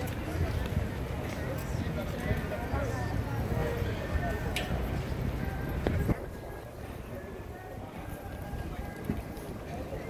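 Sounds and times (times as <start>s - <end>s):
indistinct voices of passers-by: 0.0s - 10.0s
traffic rumble: 0.0s - 10.0s.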